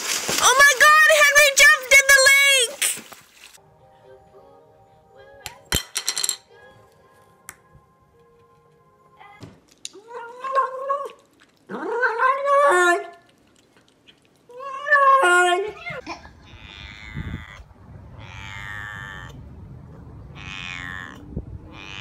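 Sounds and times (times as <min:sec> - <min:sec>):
cat meowing: 0:14.5 - 0:22.0.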